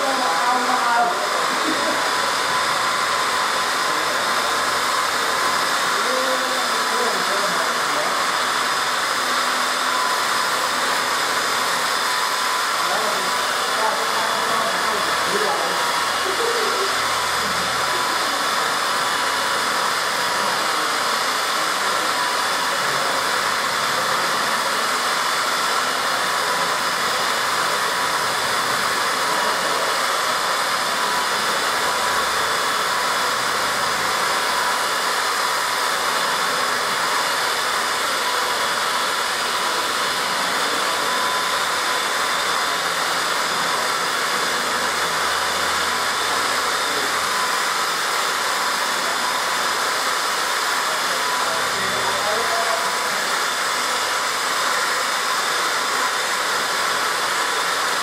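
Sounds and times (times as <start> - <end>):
car polishers whirring: 0.0 - 58.0.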